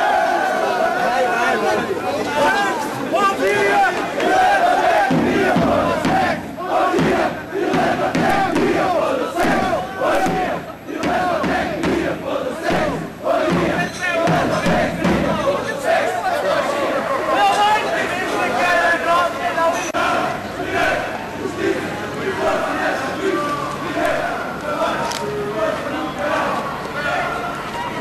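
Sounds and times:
crowd shouting: 0:00.0 - 0:28.0.

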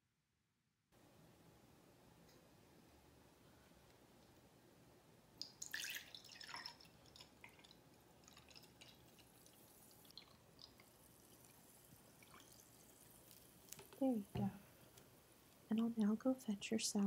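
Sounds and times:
soda pouring into a glass: 0:05.4 - 0:13.9
soda fizzing ticks: 0:05.4 - 0:16.2.

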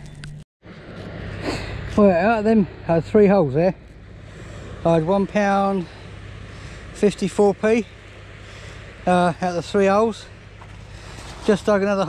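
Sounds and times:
outdoor low hum: 0:00.0 - 0:12.0.

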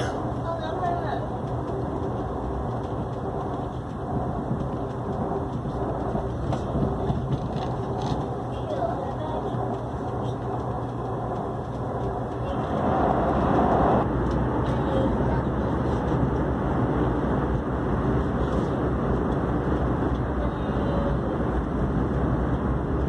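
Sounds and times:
train wheels rumbling on track: 0:00.0 - 0:23.0.

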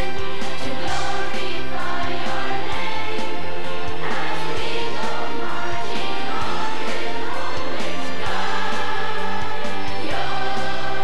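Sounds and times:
drums: 0:00.0 - 0:11.0.

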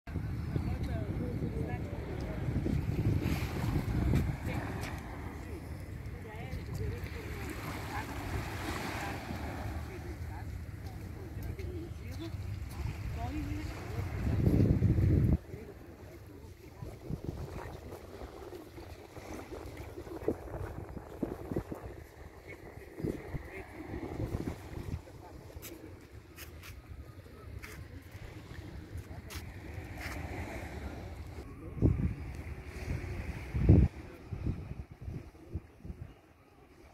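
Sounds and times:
wind buffeting microphone: 0:00.1 - 0:36.2
sea water lapping: 0:00.7 - 0:36.9.

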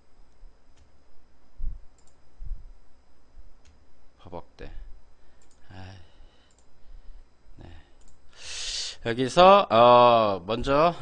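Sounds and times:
computer mouse click: 0:01.9 - 0:02.2, 0:05.4 - 0:05.6, 0:06.4 - 0:06.7, 0:08.0 - 0:08.2.

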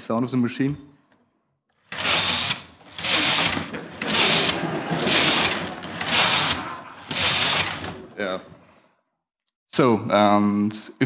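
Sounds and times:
knitting machine carriage clatter: 0:01.9 - 0:08.1.

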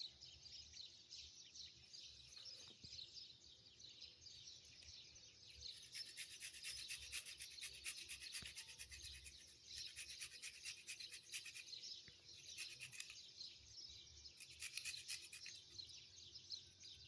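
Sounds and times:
strawberry grated on metal grater: 0:05.8 - 0:11.8, 0:12.4 - 0:13.2, 0:14.4 - 0:15.8.

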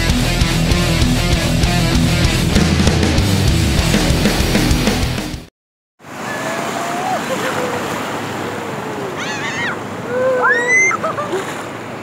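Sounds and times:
surf washing through water: 0:06.0 - 0:12.0
boys shouting and squealing: 0:06.2 - 0:11.4.

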